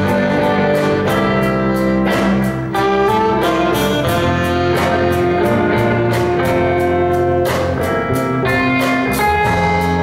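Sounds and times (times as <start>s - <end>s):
saxophones playing melody: 0.0s - 7.6s
electric bass and guitars: 0.0s - 10.0s.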